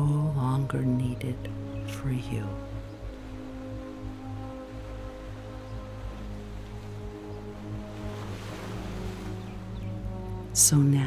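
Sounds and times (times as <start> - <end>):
ambient meditation music: 0.0 - 11.0
ocean waves: 0.0 - 11.0.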